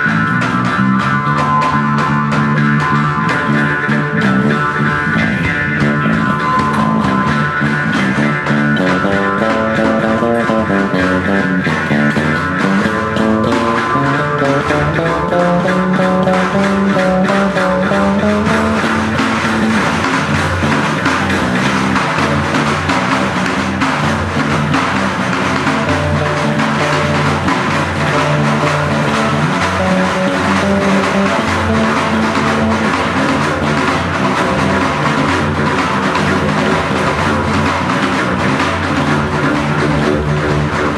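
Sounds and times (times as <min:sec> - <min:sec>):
electric bass guitar: 0:00.0 - 0:40.9
frame drum: 0:00.0 - 0:40.9
twanging jaw harp: 0:00.0 - 0:40.9.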